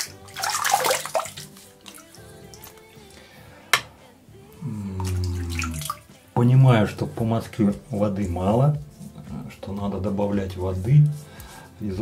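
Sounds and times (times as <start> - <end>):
water splashing and running: 0.0 - 2.8, 4.9 - 6.2.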